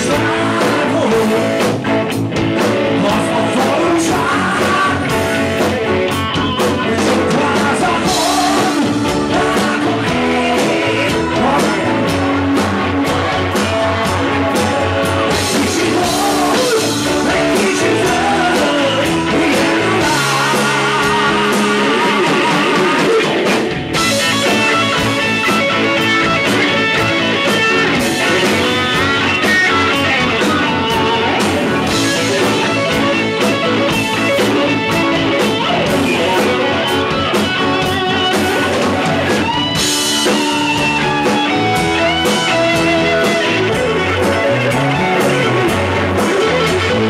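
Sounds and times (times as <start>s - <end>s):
electric guitar lead lines: 0.0s - 47.0s
live rock band playing: 0.0s - 47.0s.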